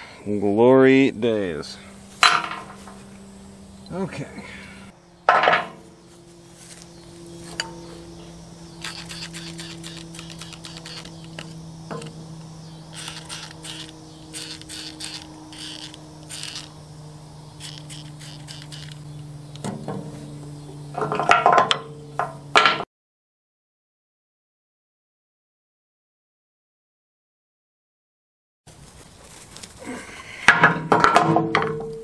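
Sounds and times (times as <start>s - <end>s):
steady low hum: 0.0s - 22.6s
loud metal knocks: 2.2s - 3.0s, 19.6s - 20.2s, 30.5s - 32.0s.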